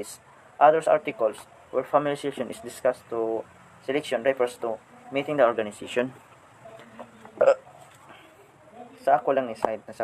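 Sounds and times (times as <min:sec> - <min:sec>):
person's short vocal sound: 0:06.9 - 0:07.8.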